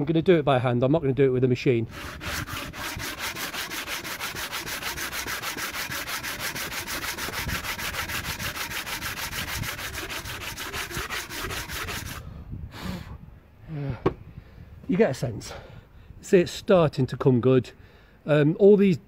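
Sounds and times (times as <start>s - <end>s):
hand sanding metal with sandpaper: 1.9s - 12.2s.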